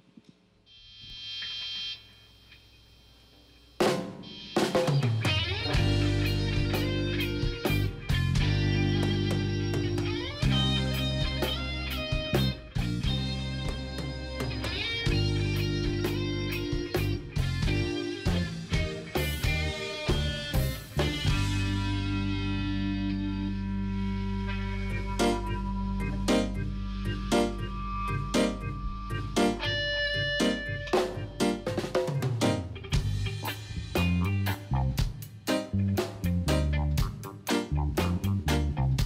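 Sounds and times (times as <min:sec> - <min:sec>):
high ringing tone: 0:00.7 - 0:03.4
drum kit: 0:03.8 - 0:23.2, 0:24.4 - 0:39.0
reggae band playing: 0:03.8 - 0:39.0
bass guitar: 0:04.6 - 0:39.0.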